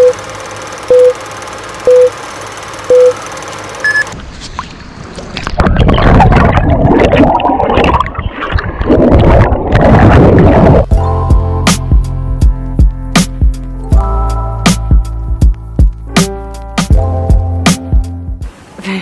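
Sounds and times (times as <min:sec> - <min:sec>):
countdown beeps: 0:00.9 - 0:01.2, 0:01.9 - 0:02.1, 0:02.9 - 0:03.2, 0:03.8 - 0:04.1
underwater rumbling and bubbling: 0:05.1 - 0:10.9.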